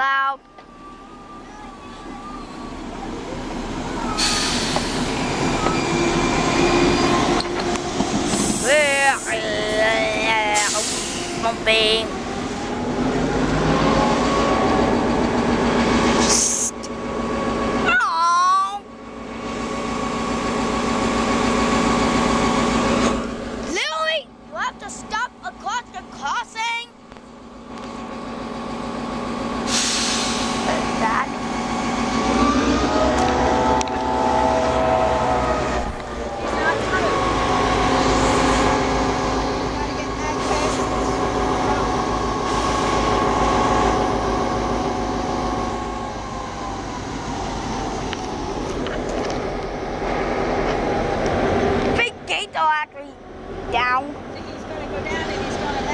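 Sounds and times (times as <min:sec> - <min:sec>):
diesel locomotive engine drone: 0:00.0 - 0:55.9.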